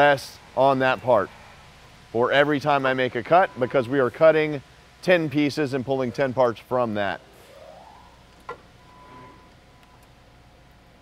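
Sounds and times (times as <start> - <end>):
faint machine hum: 0.0 - 11.0.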